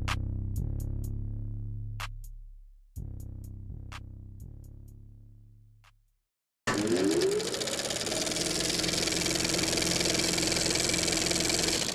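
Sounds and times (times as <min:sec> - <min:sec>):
film projector clatter: 0:06.7 - 0:11.9.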